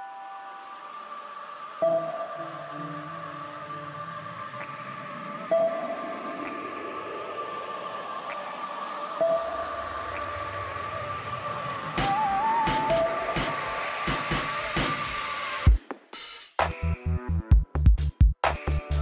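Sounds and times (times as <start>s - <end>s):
music of held tones: 0.0s - 7.1s, 9.1s - 14.7s
drum beat: 15.7s - 16.7s.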